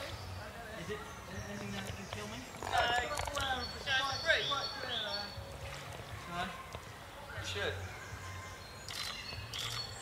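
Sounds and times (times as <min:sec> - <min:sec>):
faint voices: 0:00.0 - 0:09.8.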